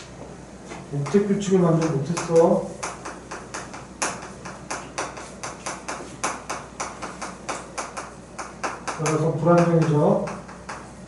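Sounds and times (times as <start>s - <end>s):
chalk tapping and scraping on chalkboard: 0.7s - 10.9s.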